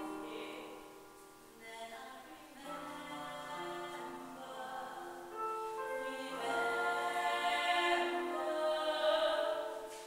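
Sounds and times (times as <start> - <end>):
two women singing classical duet: 0.0 - 10.0.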